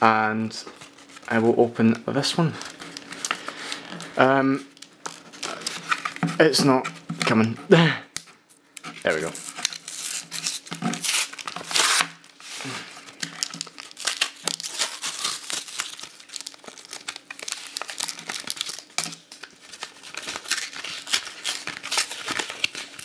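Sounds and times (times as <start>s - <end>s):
plastic packaging tearing and crinkling: 0.6s - 7.6s, 8.8s - 23.0s.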